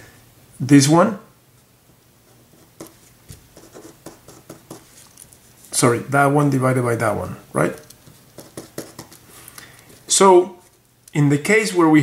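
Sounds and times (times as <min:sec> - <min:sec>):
pen writing on paper: 0:02.5 - 0:04.9, 0:08.4 - 0:09.2.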